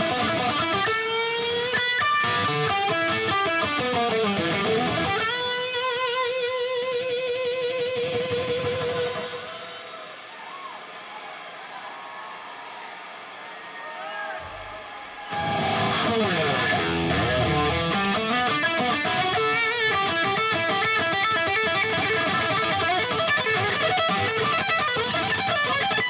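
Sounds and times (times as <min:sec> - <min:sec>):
electric guitar lead: 0:00.0 - 0:09.8, 0:15.3 - 0:26.0
live band playing: 0:00.0 - 0:10.8, 0:15.4 - 0:26.0.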